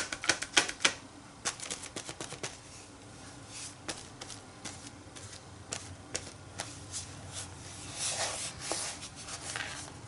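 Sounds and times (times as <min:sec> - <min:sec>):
sponge tapping on paper: 0:00.0 - 0:02.6, 0:03.9 - 0:06.7.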